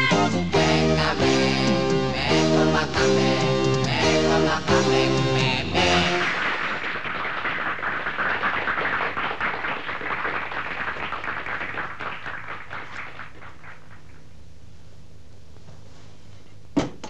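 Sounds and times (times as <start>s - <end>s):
audience applauding: 5.8s - 14.2s.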